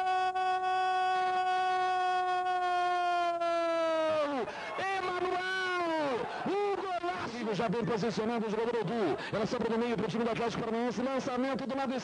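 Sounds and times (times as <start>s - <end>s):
commentator shouting: 3.8s - 12.0s.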